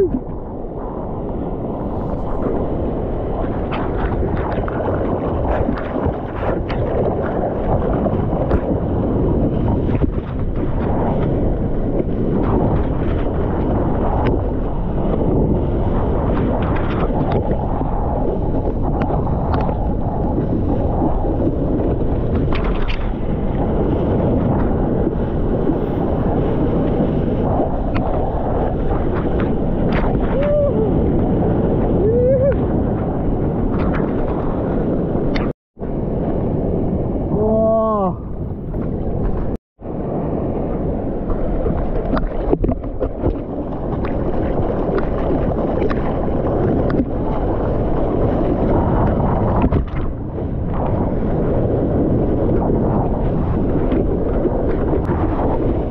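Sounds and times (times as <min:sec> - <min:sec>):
wind buffeting microphone: 0:00.0 - 0:55.9.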